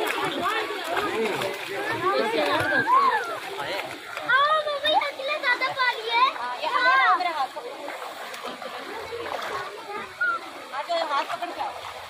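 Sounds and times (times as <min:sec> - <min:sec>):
shallow water splashing: 0:00.0 - 0:12.0
voices chattering: 0:00.0 - 0:12.0.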